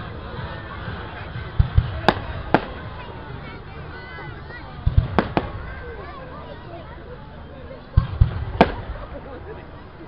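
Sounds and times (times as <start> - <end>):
firework sharp crack: 1.6 - 3.0, 4.8 - 5.9, 8.0 - 9.2
firework shells booming: 4.8 - 5.7, 8.0 - 9.1.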